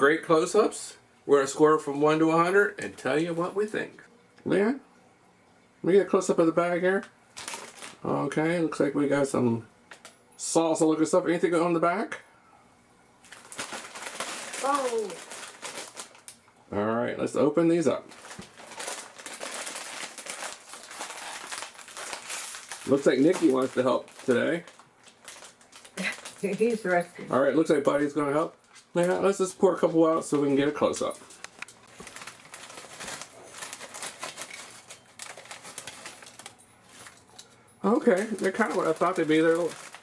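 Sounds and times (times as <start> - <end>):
foil chip bag crinkling: 6.9 - 8.2, 13.2 - 16.4, 18.0 - 29.5, 30.2 - 40.0.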